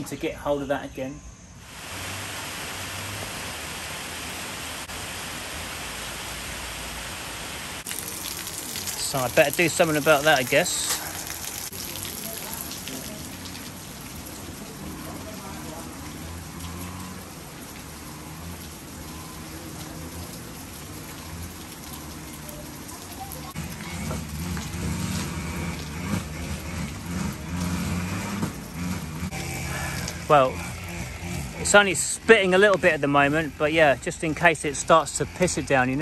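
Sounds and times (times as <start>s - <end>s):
light rain pattering: 1.7s - 36.0s
low drone: 28.9s - 34.0s.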